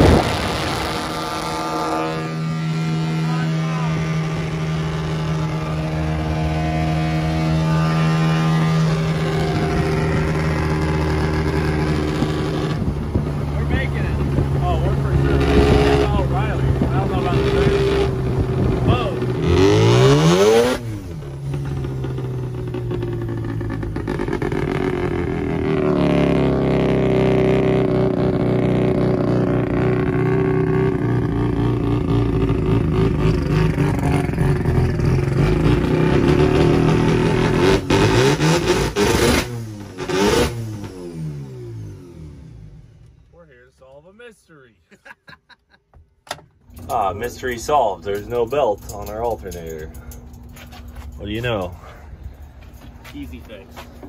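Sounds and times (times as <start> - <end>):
van engine running: 0.0 - 43.7, 46.2 - 54.0.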